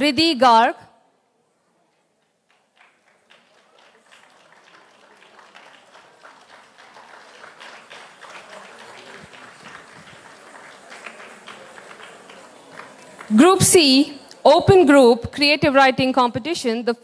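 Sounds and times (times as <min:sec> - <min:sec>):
audience applauding: 0:02.2 - 0:13.5.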